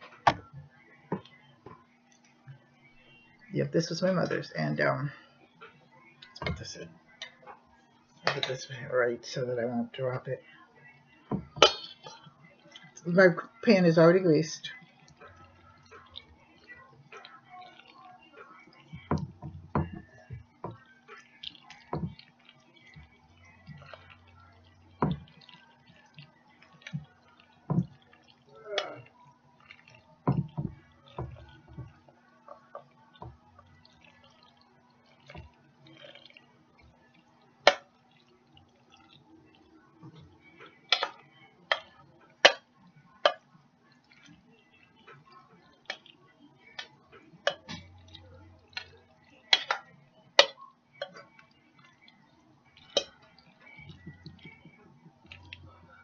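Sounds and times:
utensil clinking against dishes: 11.3s - 12.2s, 52.8s - 54.7s.

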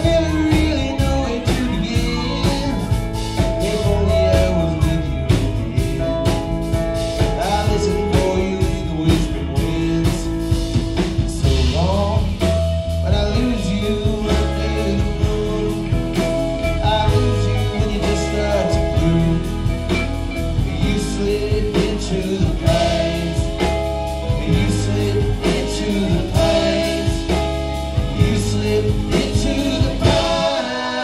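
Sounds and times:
live band playing: 0.0s - 31.0s
male lead vocal: 0.0s - 31.0s.

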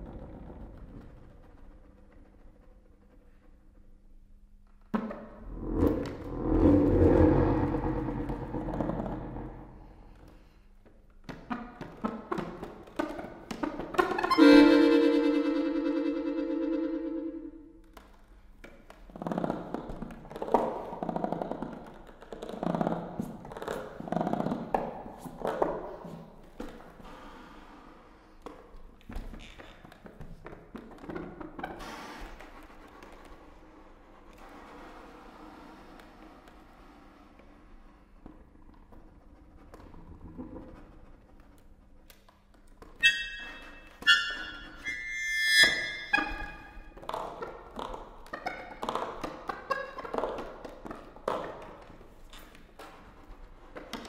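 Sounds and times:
accordion playing: 14.2s - 17.6s.

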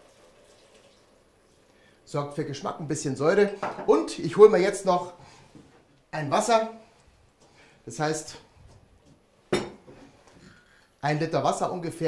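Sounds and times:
kitchenware clink: 9.5s - 10.0s.

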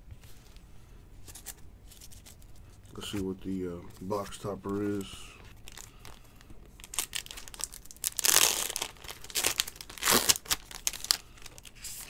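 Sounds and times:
foil crinkling by hand: 1.4s - 12.0s
foil wrapper tearing: 6.8s - 12.0s.

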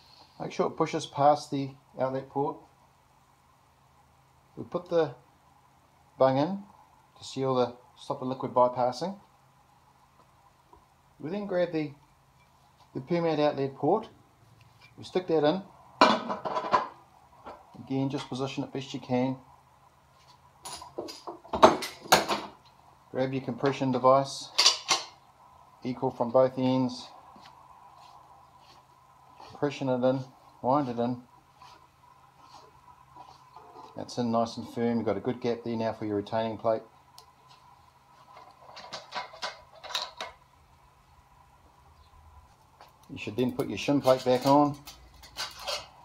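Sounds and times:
light metal clicks and scrapes: 42.6s - 46.0s
steel parts clinking: 43.4s - 46.0s.

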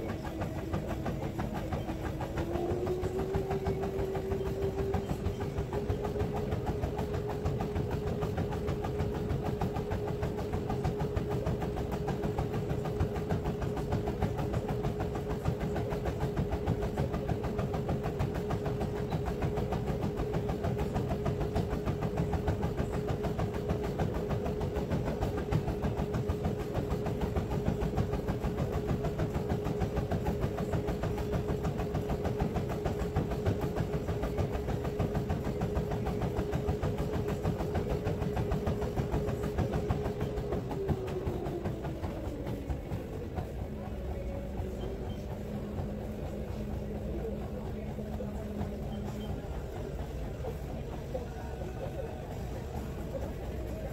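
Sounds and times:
running footfalls on treadmill: 0.0s - 53.9s
treadmill motor whine: 0.0s - 53.9s.

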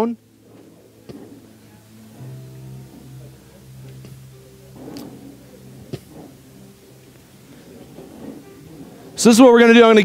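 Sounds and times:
faint background music: 0.0s - 10.0s
room noise: 0.0s - 10.0s.

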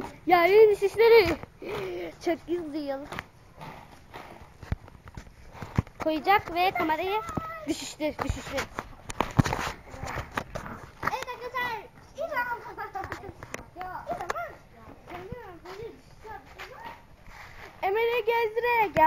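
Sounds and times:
children talking: 0.0s - 3.3s, 6.0s - 8.8s, 9.8s - 19.0s.

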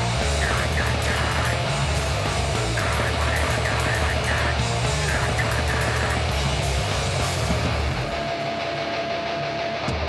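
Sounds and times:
distorted electric guitar: 0.0s - 10.0s.

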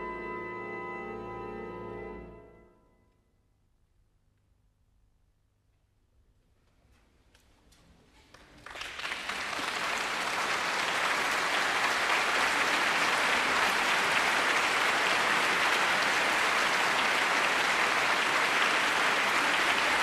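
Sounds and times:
audience applauding: 8.3s - 20.0s.

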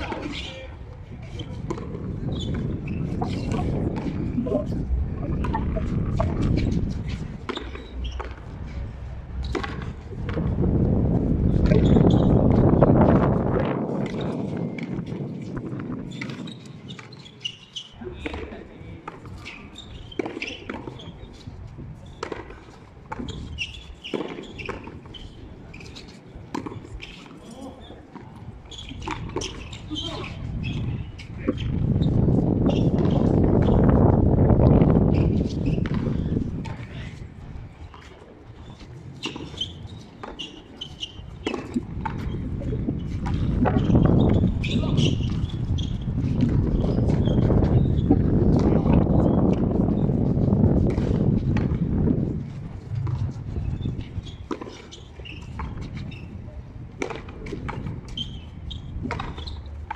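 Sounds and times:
low rumbling noise: 0.8s - 16.0s.

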